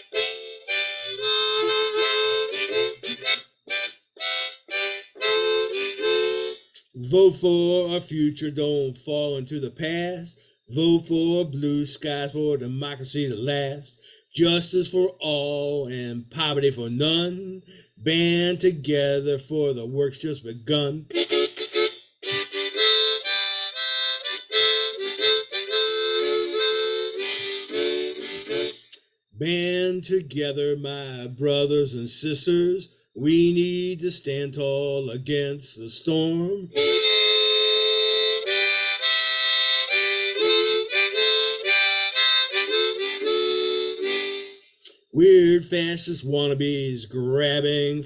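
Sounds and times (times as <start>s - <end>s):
harmonica melody: 0.0s - 7.9s, 20.7s - 29.1s, 36.7s - 45.0s.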